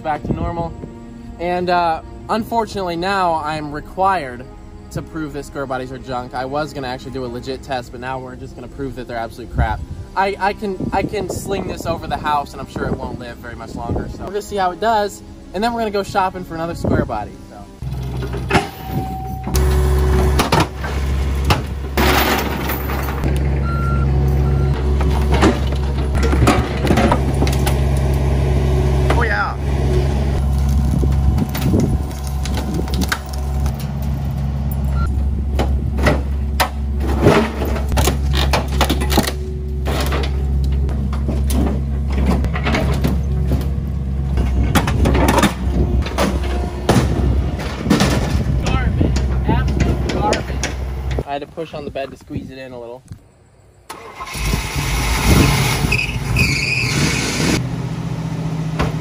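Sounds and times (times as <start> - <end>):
excavator engine running: 17.6 - 51.3
logs knocking and thudding: 20.4 - 23.6, 24.7 - 28.2, 35.5 - 51.2.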